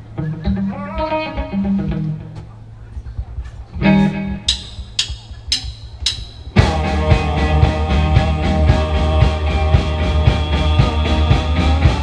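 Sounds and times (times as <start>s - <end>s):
electric guitar and bass notes: 0.0s - 12.0s
rock band playing: 3.8s - 12.0s
sharp count-in clicks: 4.3s - 6.6s.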